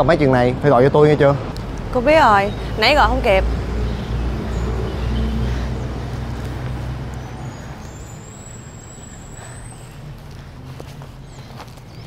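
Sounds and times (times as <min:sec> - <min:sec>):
steady traffic noise: 0:00.0 - 0:12.0
vehicle passing rumble: 0:00.0 - 0:12.0.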